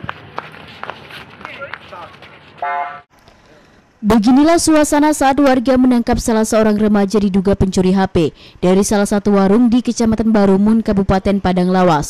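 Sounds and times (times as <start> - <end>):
scuffling feet: 0.0 - 2.9.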